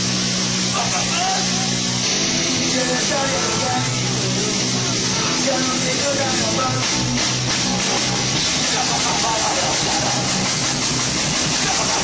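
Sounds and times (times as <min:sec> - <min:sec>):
distorted rock band playing: 0:00.0 - 0:12.0
person singing: 0:02.5 - 0:07.0.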